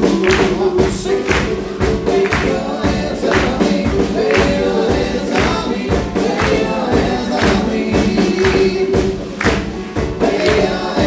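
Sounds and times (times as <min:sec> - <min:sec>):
acoustic guitars: 0:00.0 - 0:11.0
drum beat: 0:00.0 - 0:11.0
person singing: 0:00.0 - 0:11.0
piano: 0:00.0 - 0:11.0.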